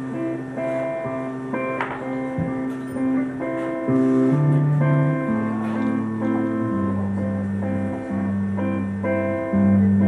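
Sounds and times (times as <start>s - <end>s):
electric guitars ringing chords: 0.0s - 10.0s.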